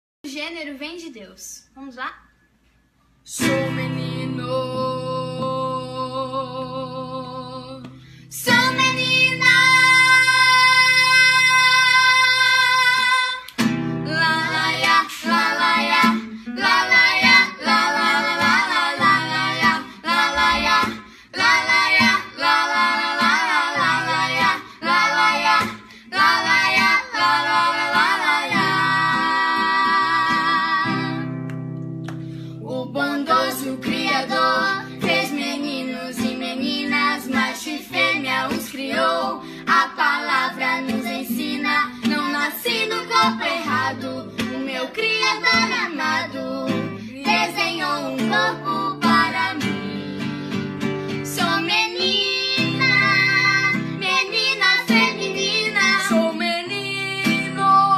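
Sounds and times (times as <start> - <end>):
acoustic guitar: 2.3 - 57.9
children singing: 8.4 - 13.4, 14.1 - 31.3, 32.7 - 50.4, 51.3 - 57.9.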